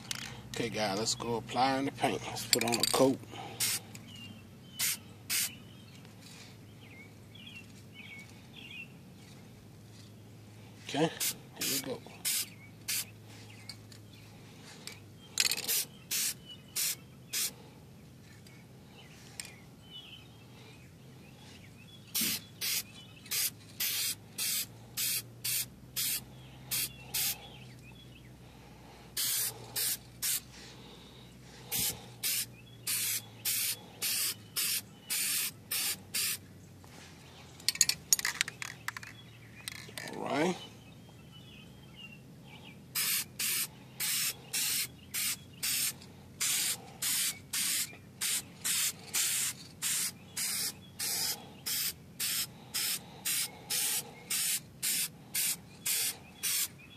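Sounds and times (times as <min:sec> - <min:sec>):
spray paint can hissing: 0:03.6 - 0:03.8, 0:04.8 - 0:05.5, 0:11.2 - 0:13.1, 0:15.7 - 0:17.5, 0:22.1 - 0:27.4, 0:29.2 - 0:30.5, 0:31.7 - 0:36.4, 0:43.0 - 0:56.7.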